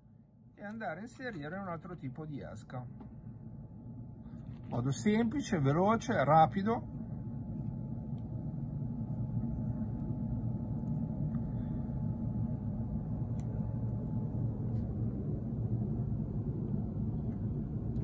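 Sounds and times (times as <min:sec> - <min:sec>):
faint steady hum: 0:00.0 - 0:18.0
low background rumble: 0:00.0 - 0:18.0.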